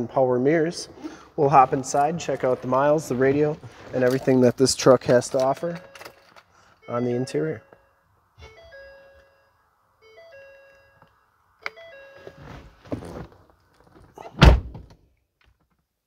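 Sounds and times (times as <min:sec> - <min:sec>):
dashboard warning chime: 0:05.4 - 0:12.8
heavy thunk: 0:14.4 - 0:14.9.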